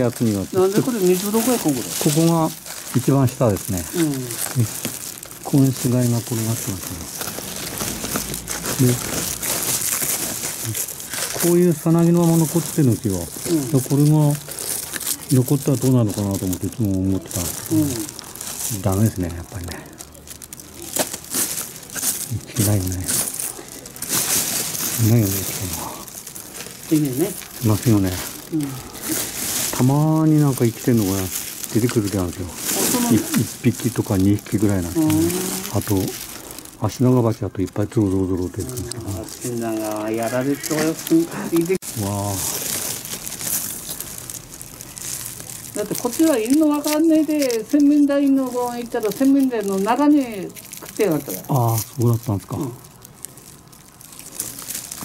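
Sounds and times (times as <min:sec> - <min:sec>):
man talking: 0:00.0 - 0:07.2, 0:08.8 - 0:09.1, 0:10.6 - 0:14.5, 0:15.3 - 0:20.0, 0:22.3 - 0:23.3, 0:24.9 - 0:26.1, 0:26.9 - 0:28.9, 0:29.7 - 0:42.6, 0:51.4 - 0:52.8
papery nest crackling: 0:00.0 - 0:55.0.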